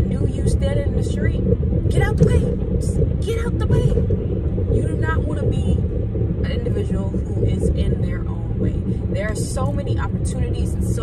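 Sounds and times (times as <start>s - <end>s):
woman talking: 0.0s - 4.1s, 4.7s - 5.8s, 6.4s - 11.0s
car cabin rumble: 0.0s - 11.0s.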